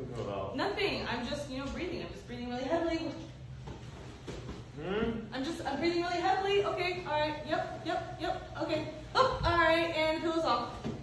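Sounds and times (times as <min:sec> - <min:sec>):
clothing rustling: 0:03.5 - 0:04.8.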